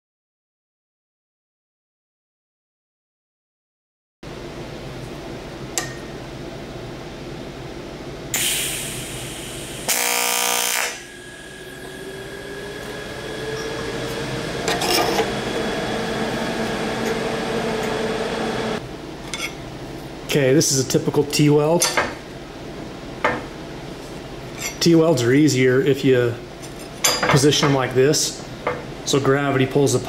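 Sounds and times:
welding arc buzzing: 8.4 - 18.8.

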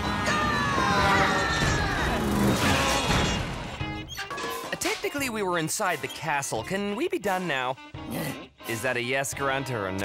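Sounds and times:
cartoon action music: 0.0 - 10.0.

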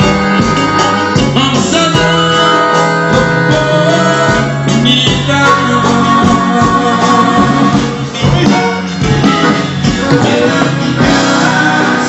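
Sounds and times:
person singing: 0.0 - 8.8, 9.4 - 12.0
live band music: 0.0 - 12.0.

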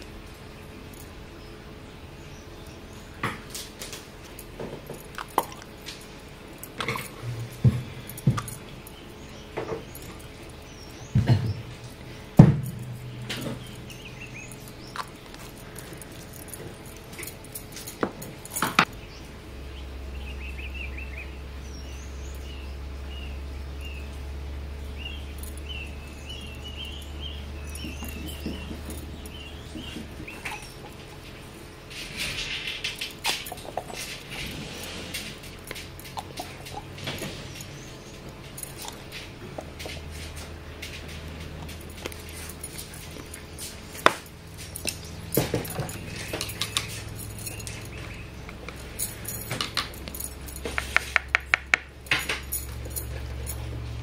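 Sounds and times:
low steady hum: 0.0 - 54.0
light metallic clinks: 2.2 - 19.2, 21.7 - 54.0.

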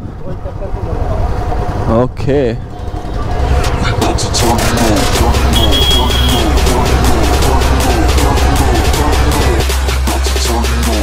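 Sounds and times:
motorcycle engine rumbling: 0.0 - 9.8.

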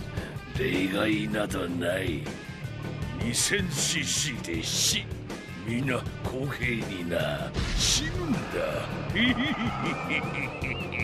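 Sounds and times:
old man laughing: 9.1 - 11.0.

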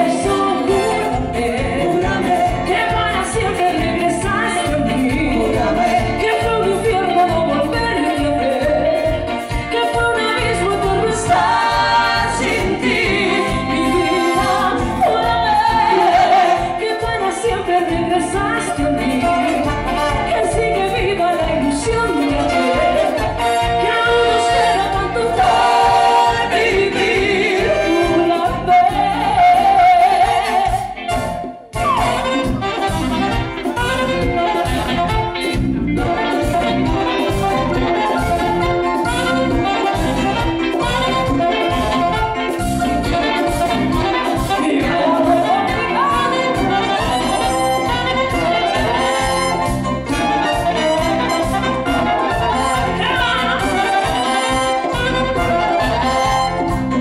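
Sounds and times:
latin dance band playing: 0.0 - 57.0.

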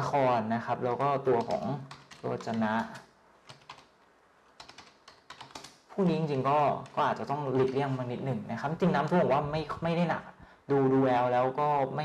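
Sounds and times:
keyboard keys tapping: 0.9 - 4.0, 4.6 - 8.0.

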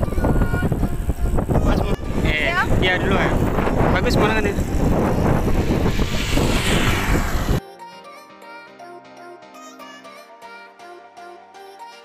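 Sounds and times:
wind rushing over microphone: 0.0 - 7.6
background music: 7.6 - 12.0.

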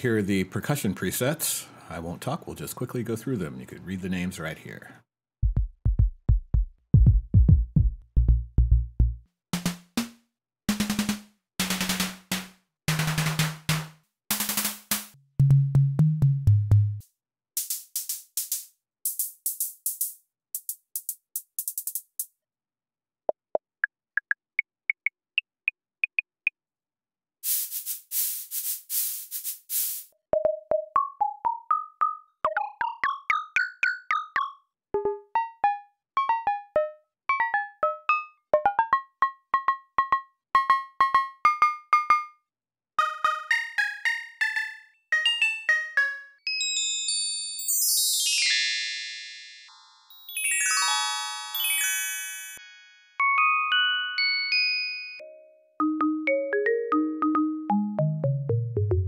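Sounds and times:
synthesized hi-hat hits: 10.7 - 15.2, 17.6 - 22.2
clave-like pitched clicks: 24.2 - 26.6
hissing sand-block swishes: 27.4 - 30.1
cascade of high chime tones: 46.5 - 55.6.

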